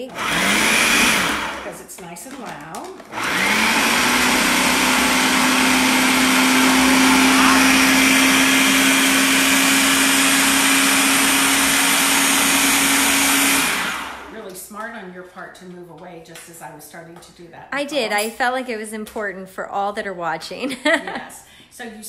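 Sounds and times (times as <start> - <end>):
food processor motor running: 0.0 - 1.8, 2.9 - 14.4.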